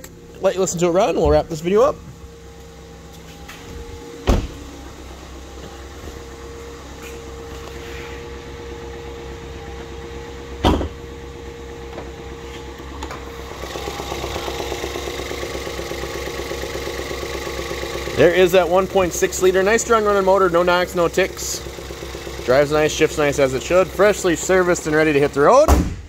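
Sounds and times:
car engine idling with faint whine: 0.0 - 26.0.

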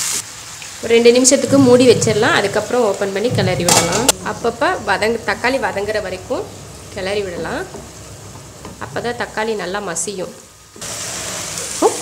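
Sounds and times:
vegetables sizzling in oil: 0.0 - 12.0
person speaking: 0.9 - 7.8.

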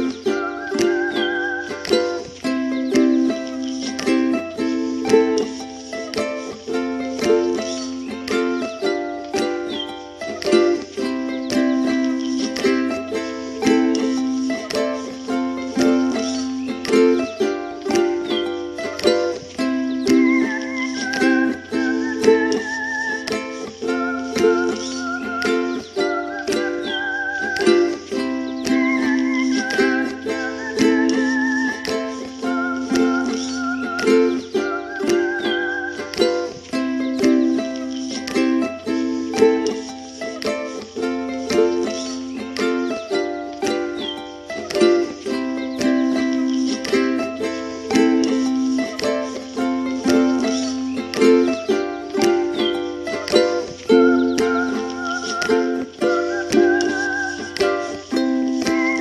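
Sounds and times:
background music with steady beat: 0.0 - 59.0.

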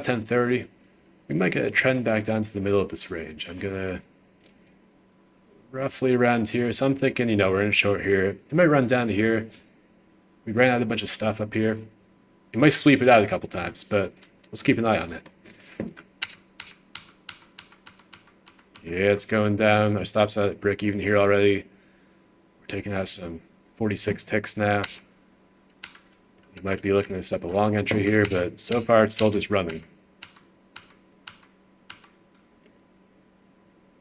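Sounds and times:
computer mouse clicks: 16.2 - 18.9, 25.8 - 26.2, 29.6 - 32.4.

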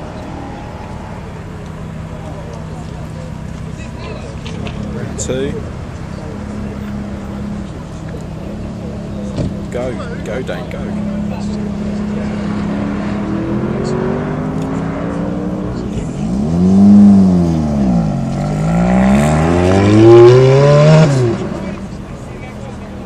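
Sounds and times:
sports car engine accelerating: 0.0 - 23.0.

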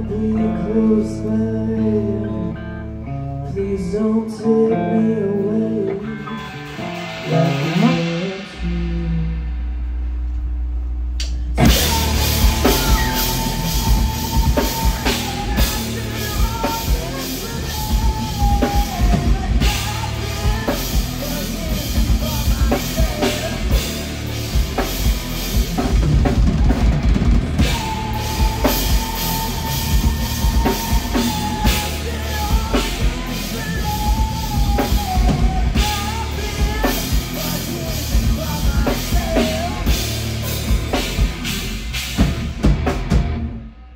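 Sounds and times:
person singing: 0.0 - 9.8, 11.3 - 41.5
ringing electric guitar notes: 0.0 - 43.7
live rock band playing: 0.0 - 43.9
low bass guitar note: 6.9 - 18.4.

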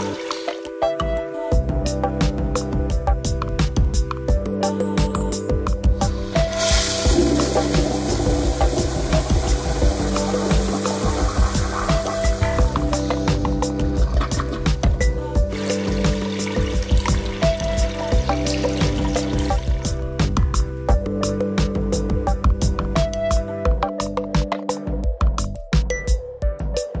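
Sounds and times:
rushing water: 0.0 - 0.7, 6.2 - 14.8, 15.5 - 19.9
background music: 0.0 - 27.0.

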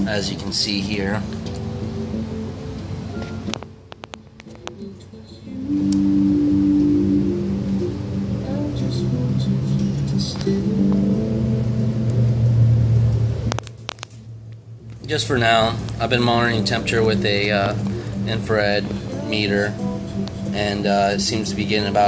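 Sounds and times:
low held notes from speaker: 0.0 - 22.0.

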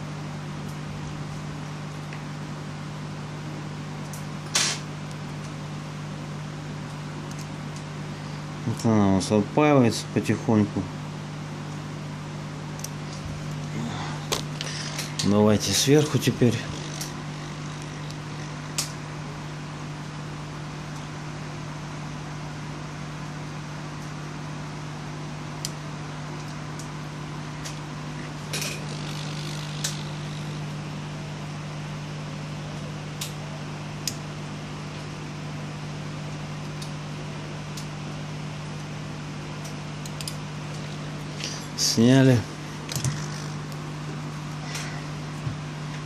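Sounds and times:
hot air gun fan hum: 0.0 - 46.0.

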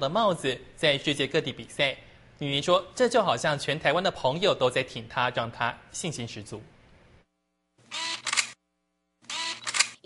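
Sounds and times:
camera shutter clicking: 7.9 - 8.6, 9.3 - 10.0.

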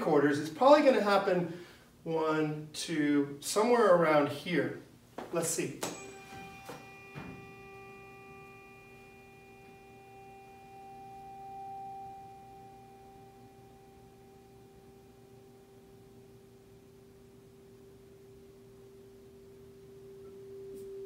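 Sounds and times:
tuning fork ringing: 5.8 - 21.0.

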